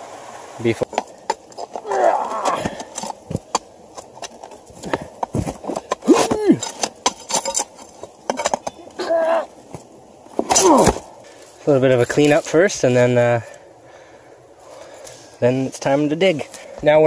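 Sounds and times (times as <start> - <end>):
digging tool scraping rocks and gravel: 0.7 - 12.6.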